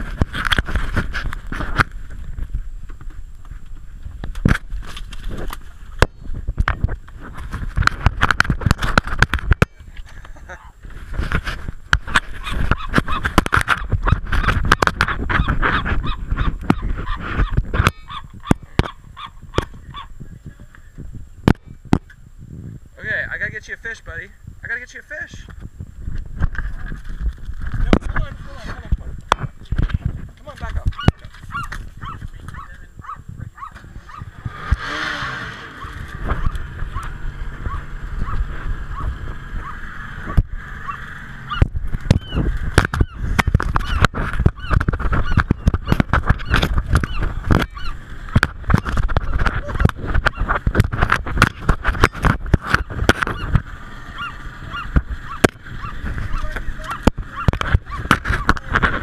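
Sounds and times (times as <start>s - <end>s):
wings flapping: 40.8s - 59.0s.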